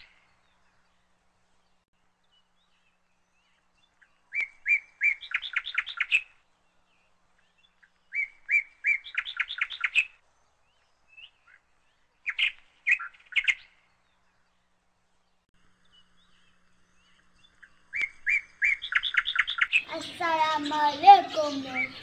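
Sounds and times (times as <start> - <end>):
songbird singing: 0.0 - 22.0.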